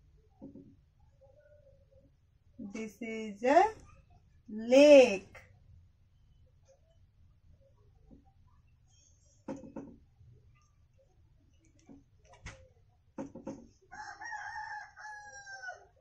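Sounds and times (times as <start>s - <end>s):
marker tapping on whiteboard: 0.4s - 0.8s, 9.4s - 10.0s, 13.2s - 13.7s
rooster crowing: 13.9s - 16.0s.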